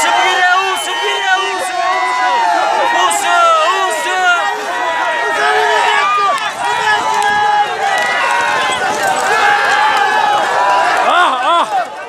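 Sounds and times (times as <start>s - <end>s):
men shouting: 0.0s - 12.0s
horses galloping: 0.1s - 12.0s.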